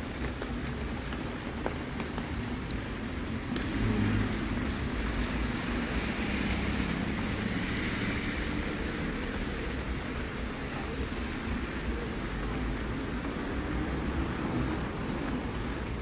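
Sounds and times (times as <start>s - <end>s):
tyres hissing on wet asphalt: 0.1s - 16.0s.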